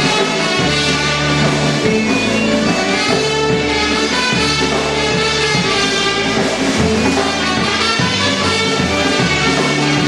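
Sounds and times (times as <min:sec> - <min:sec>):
polka band playing a waltz: 0:00.0 - 0:10.0.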